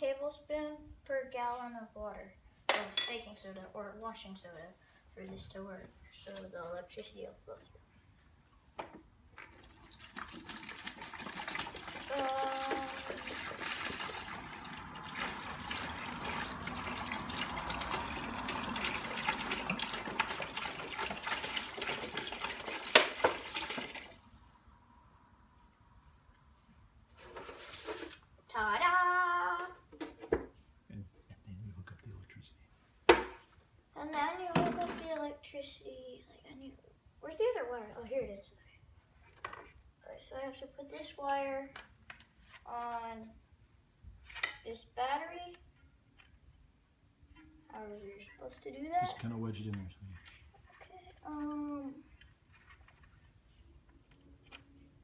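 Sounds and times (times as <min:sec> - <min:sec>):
water pouring into plastic bucket: 0:09.4 - 0:24.4.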